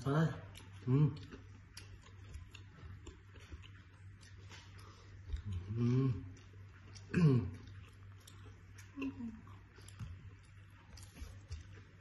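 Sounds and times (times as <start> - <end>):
chewing and mouth clicks: 0.1 - 12.0.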